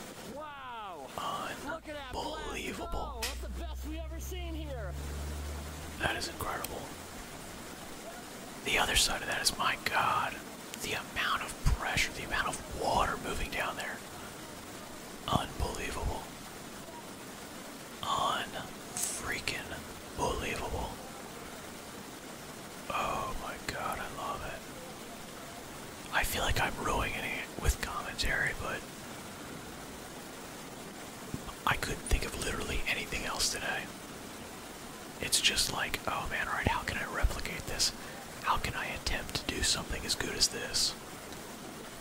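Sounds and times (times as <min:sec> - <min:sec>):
whispery voices: 0:00.3 - 0:05.1, 0:05.9 - 0:07.0, 0:07.9 - 0:16.3, 0:18.0 - 0:21.6, 0:22.9 - 0:25.1, 0:35.3 - 0:41.0.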